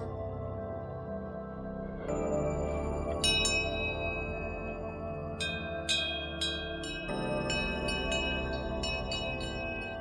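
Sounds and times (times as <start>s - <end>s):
ambient music drone: 0.0s - 10.0s
cowbells ringing: 5.4s - 10.0s.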